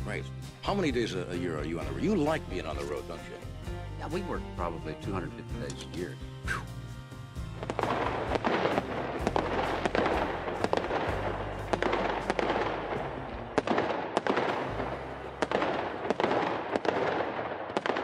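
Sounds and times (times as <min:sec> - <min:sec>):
fireworks crackling: 0:07.4 - 0:18.0
fireworks bangs: 0:07.6 - 0:18.0.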